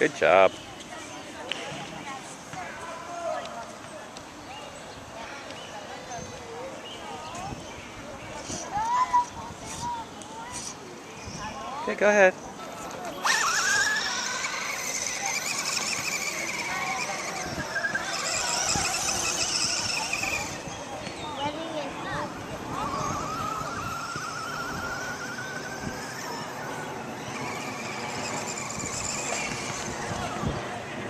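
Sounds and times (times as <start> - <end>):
distant electric motor whining: 13.1 - 30.8.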